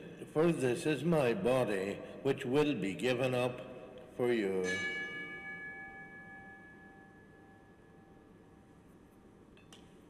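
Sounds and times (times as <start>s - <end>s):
altar bell ringing: 4.6s - 8.6s.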